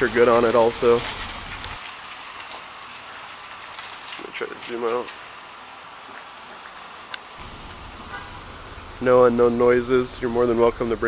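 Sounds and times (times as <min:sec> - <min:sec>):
steady faint hiss: 0:03.8 - 0:11.0
van engine idling: 0:07.4 - 0:11.0.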